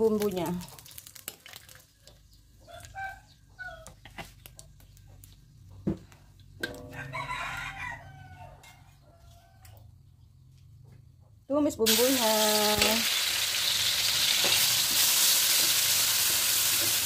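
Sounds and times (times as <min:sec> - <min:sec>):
rooster crowing: 0:06.8 - 0:09.8.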